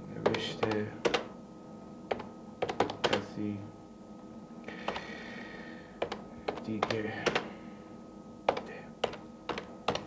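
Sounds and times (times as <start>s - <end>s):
computer keyboard typing: 0.2s - 1.3s, 2.1s - 3.2s, 6.0s - 7.5s, 8.5s - 10.0s.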